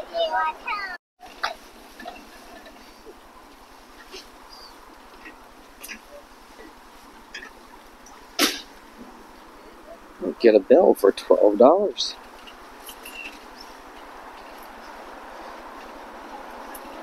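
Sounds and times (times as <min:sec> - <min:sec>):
faint open-air background: 0:00.0 - 0:17.0.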